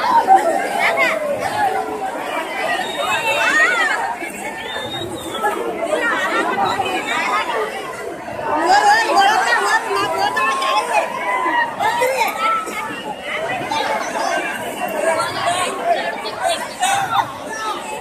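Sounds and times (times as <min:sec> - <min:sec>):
crowd talking and calling out: 0:00.0 - 0:18.0.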